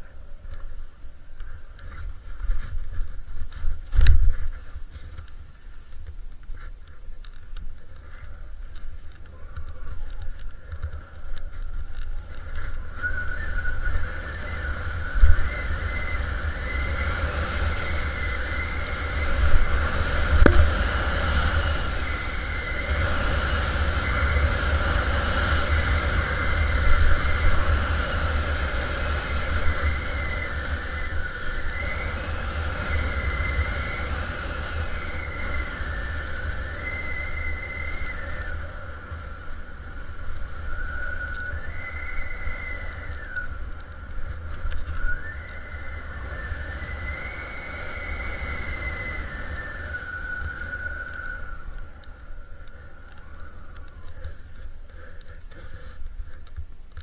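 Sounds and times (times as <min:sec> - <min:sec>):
thin high whine: 0:00.0 - 0:57.0
wind rumbling on microphone: 0:00.0 - 0:57.0.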